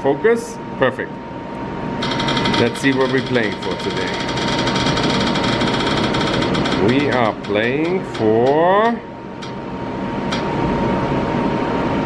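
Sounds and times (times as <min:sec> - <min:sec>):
steady hum: 0:00.0 - 0:12.0
rapid wheel ticking: 0:02.0 - 0:09.6.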